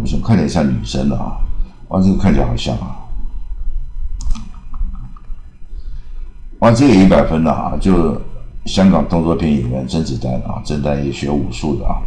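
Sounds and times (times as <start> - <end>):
low steady hum: 0.0 - 12.0
sharp click: 4.2 - 5.3.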